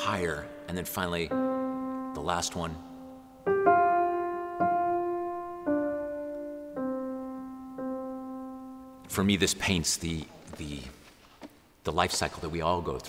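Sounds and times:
slow piano notes: 0.0s - 10.2s.

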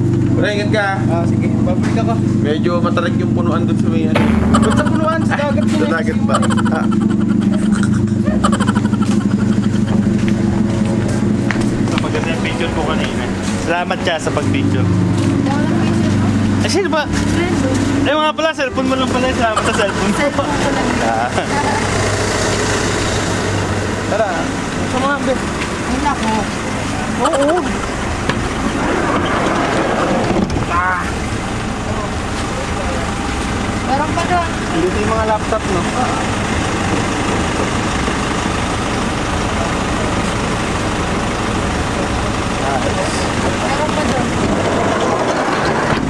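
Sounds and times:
vehicle engine idling: 0.0s - 46.0s.

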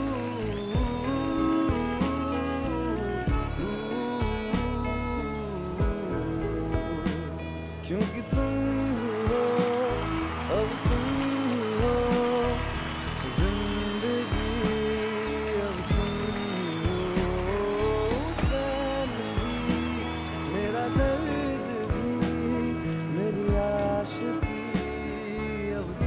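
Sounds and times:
man singing: 0.0s - 26.0s.

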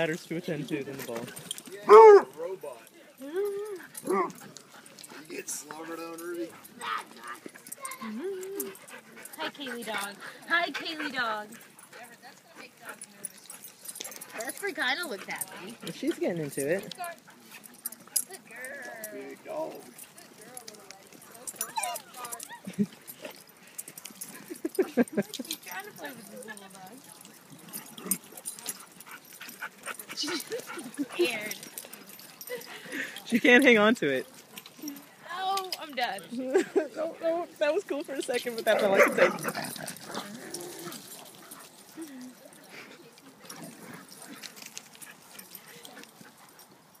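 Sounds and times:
dogs barking and yipping: 1.0s - 33.4s, 36.6s - 47.0s.

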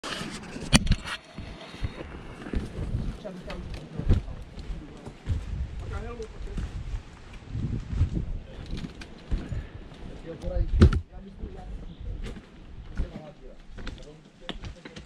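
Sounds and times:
wind rumble: 0.0s - 13.1s
footsteps on dirt and slate: 1.1s - 11.1s, 12.2s - 15.0s.

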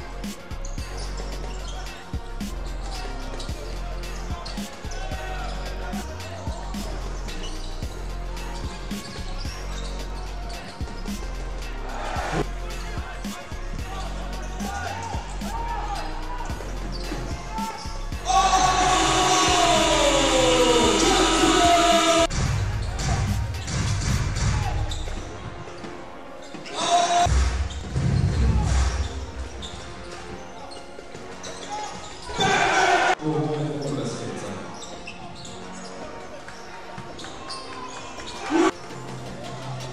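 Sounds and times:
arena crowd noise: 0.0s - 39.9s
sneaker squeaks: 0.2s - 11.7s, 16.4s - 18.2s, 22.2s - 32.6s, 33.7s - 39.0s
loud arena horn: 7.9s - 22.4s, 32.3s - 33.2s.

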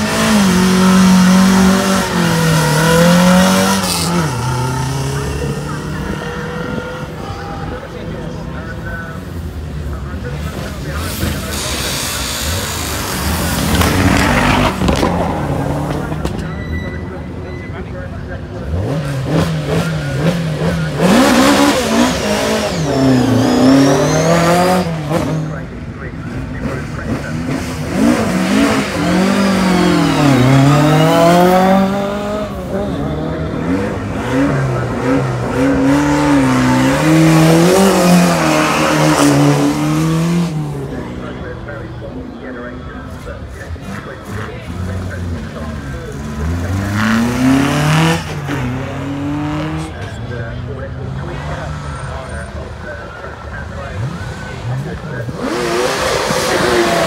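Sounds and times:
car engine revving hard: 0.0s - 7.4s, 10.5s - 16.2s, 18.6s - 25.6s, 26.4s - 41.6s, 43.7s - 50.4s, 51.0s - 57.0s.

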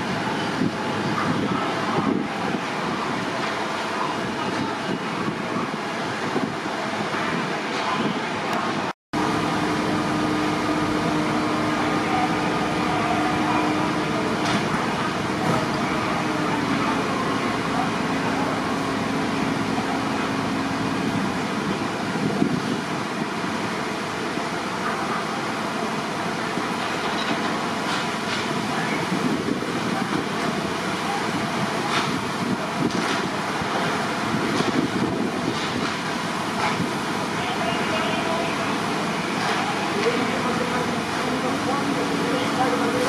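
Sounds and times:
engine drone: 0.0s - 43.0s
fire engine machinery: 0.0s - 43.0s.

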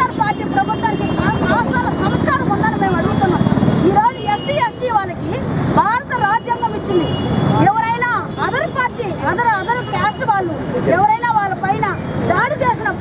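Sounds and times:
low rumble of street noise: 0.0s - 13.0s
woman speaking: 0.0s - 13.0s.

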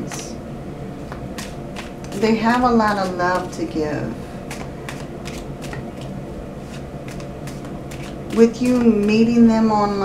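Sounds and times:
low steady hum: 0.0s - 10.0s
cards being shuffled: 1.4s - 2.2s, 4.5s - 9.2s.

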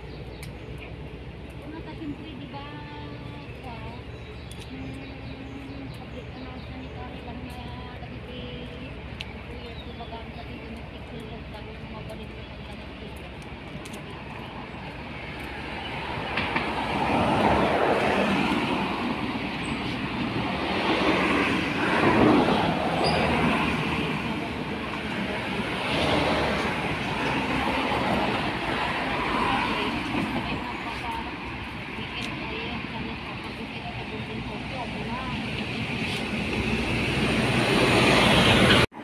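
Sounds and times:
vehicles driving past: 0.0s - 39.0s.

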